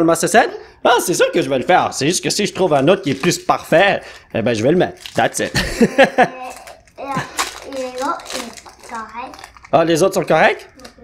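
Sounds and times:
foil pack crinkling: 0:02.6 - 0:05.7, 0:06.4 - 0:11.0.

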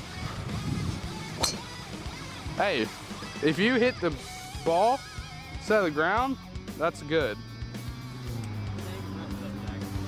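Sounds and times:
guitar music: 0:01.2 - 0:10.0
golf club striking ball: 0:01.3 - 0:02.0.

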